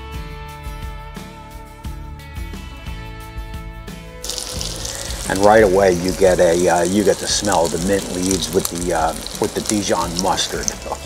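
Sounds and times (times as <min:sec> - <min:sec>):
meat frying in hot oil: 0:04.2 - 0:11.0.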